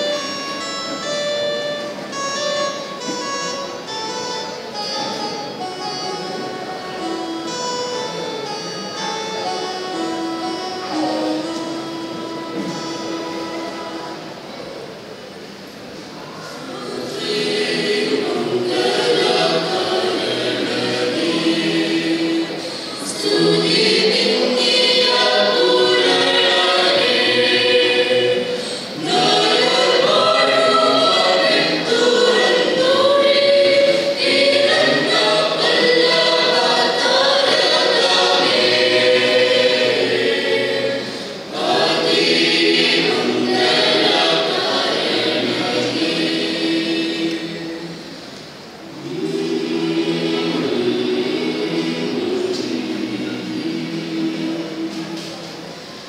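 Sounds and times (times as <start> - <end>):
church choir singing a carol: 0.0 - 15.6, 16.2 - 56.0.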